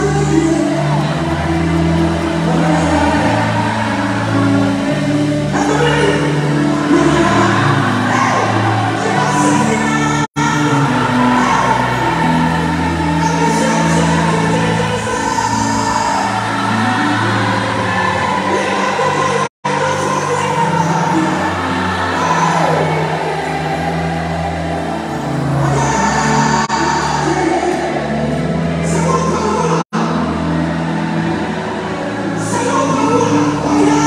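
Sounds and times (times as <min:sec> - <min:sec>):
gospel band with bass line: 0:00.0 - 0:34.0
lead singer: 0:00.0 - 0:34.0.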